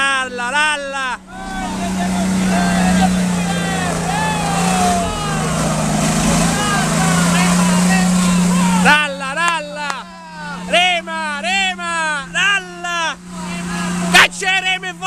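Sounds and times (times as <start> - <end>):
off-road engine running hard: 0.0 - 15.0
spectators shouting: 0.0 - 15.0.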